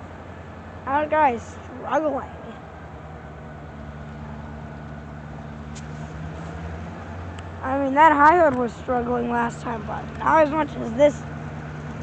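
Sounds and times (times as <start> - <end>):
diesel locomotive engine droning: 0.0 - 12.0.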